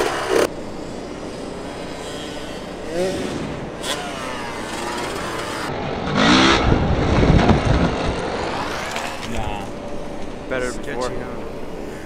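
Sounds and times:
dirt bike engine revving: 0.0 - 10.8
heavy rumble: 3.0 - 12.0.

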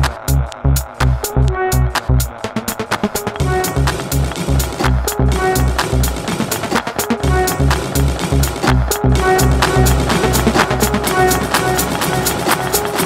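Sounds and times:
minimal techno music: 0.0 - 13.0.

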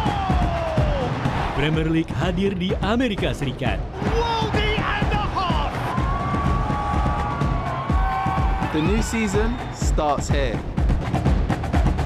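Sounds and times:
music with heavy pulsing beat: 0.0 - 12.0.

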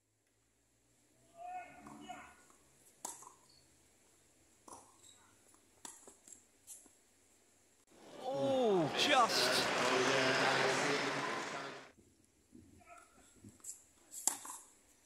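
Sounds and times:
loud voice: 8.1 - 11.9.

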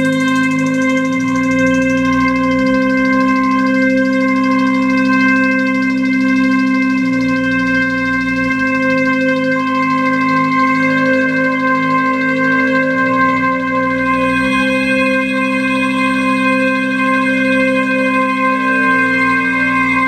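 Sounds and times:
synthesizer bass notes: 0.0 - 20.0
synthesizer high drone: 0.0 - 20.0.

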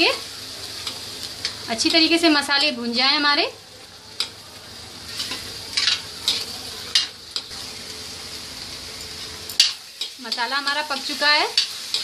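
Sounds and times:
masala sizzling in a pan: 0.0 - 12.0.

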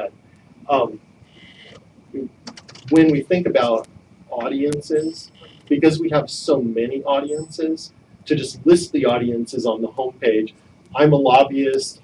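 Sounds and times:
man talking: 0.7 - 1.0, 2.2 - 12.0.

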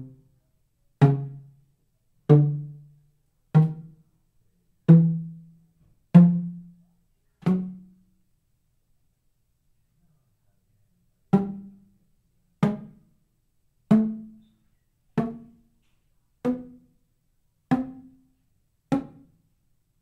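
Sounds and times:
pipe percussion hollow notes: 11.3 - 11.9, 12.6 - 13.1, 15.2 - 15.7, 16.4 - 16.9.

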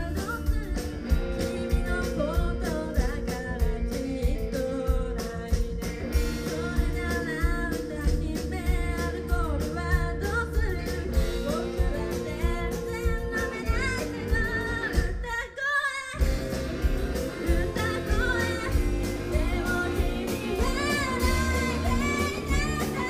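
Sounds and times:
rock band playing: 0.0 - 15.5, 16.1 - 23.0
person singing: 0.0 - 16.5, 17.2 - 23.0.

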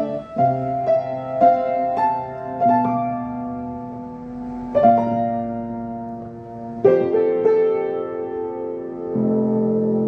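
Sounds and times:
solo piano ballad: 0.0 - 10.0.

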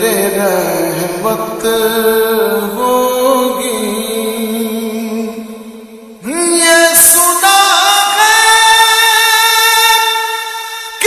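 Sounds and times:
reverberant voice singing long notes: 0.0 - 11.0.

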